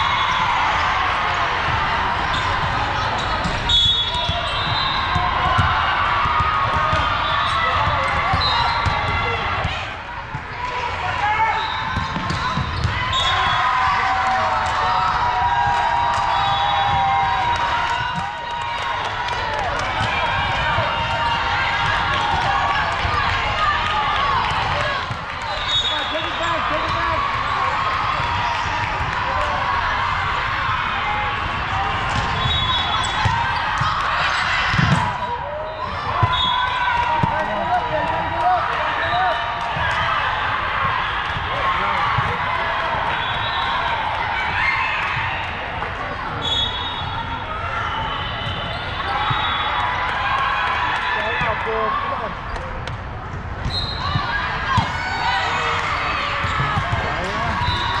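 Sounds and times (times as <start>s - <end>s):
volleyballs struck and bouncing: 1.5s - 11.2s, 11.8s - 13.2s, 14.6s - 25.6s, 31.4s - 35.4s, 52.5s - 58.0s.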